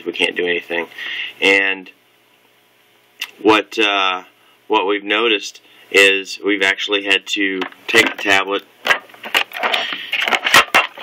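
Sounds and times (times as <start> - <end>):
plastic shell scraping and rubbing: 7.9 - 11.0.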